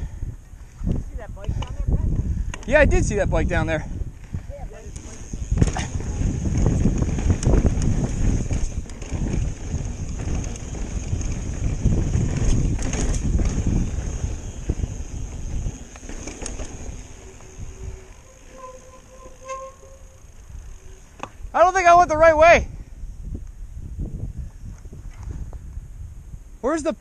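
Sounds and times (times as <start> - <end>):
wind buffeting microphone: 0.0 - 26.6
bike tyres rumbling on rock: 2.2 - 22.5
bike knocks and rattles: 4.2 - 18.2.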